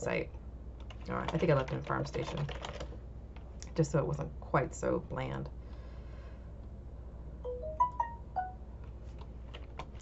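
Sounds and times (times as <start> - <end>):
electronic notification chime: 7.5 - 8.6.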